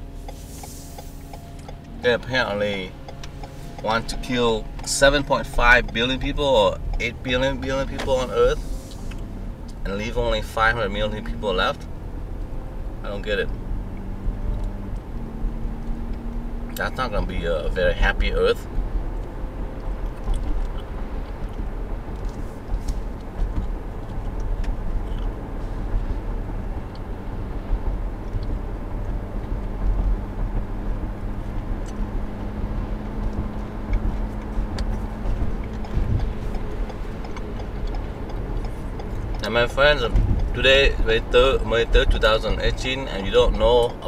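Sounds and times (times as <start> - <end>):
road and engine rumble in car: 0.0 - 44.0.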